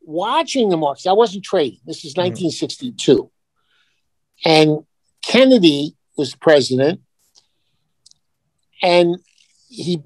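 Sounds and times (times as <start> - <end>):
man speaking: 0.0 - 3.3, 4.4 - 7.0, 8.8 - 10.0.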